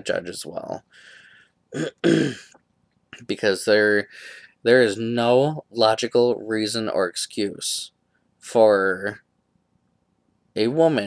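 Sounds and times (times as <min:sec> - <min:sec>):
man clearing his throat: 0:01.7 - 0:02.6.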